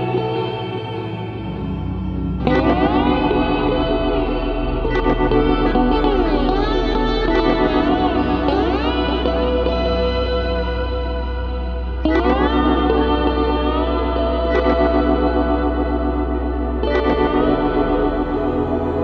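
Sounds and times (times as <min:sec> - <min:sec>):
echoing slide guitar: 0:00.0 - 0:19.0
steady low drone: 0:00.0 - 0:19.0.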